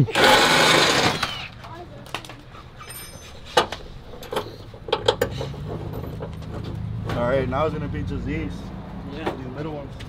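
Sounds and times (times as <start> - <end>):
metal parts and tools clanking: 1.0 - 6.8
low vehicle engine hum: 3.4 - 10.0.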